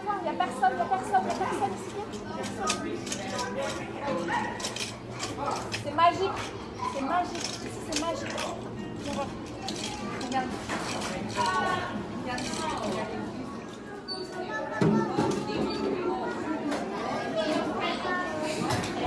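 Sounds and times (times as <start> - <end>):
children and adults chattering: 0.0 - 19.0.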